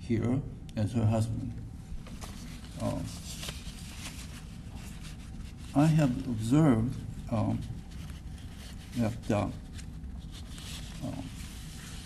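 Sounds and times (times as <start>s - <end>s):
faint rustling: 1.5s - 12.0s.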